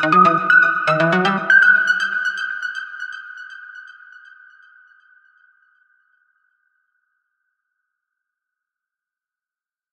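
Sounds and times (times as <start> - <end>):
bell-like synthesizer tone with echoes: 0.0 - 4.9.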